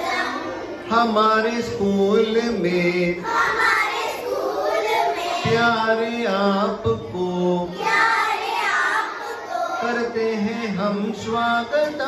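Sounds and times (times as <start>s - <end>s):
girls singing together: 0.0s - 0.8s, 3.0s - 5.8s, 7.6s - 10.4s.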